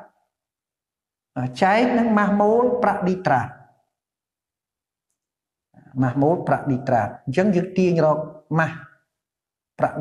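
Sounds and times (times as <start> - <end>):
person speaking: 1.3 - 3.8, 5.1 - 9.1, 9.7 - 10.0.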